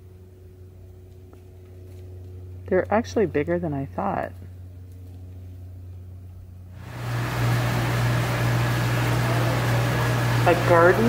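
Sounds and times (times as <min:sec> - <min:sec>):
mechanical hum with rushing hiss: 0:00.0 - 0:11.0.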